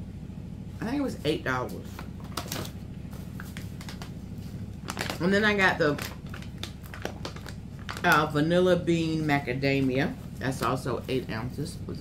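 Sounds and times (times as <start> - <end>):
coffee bag packaging crinkling: 4.8 - 8.4.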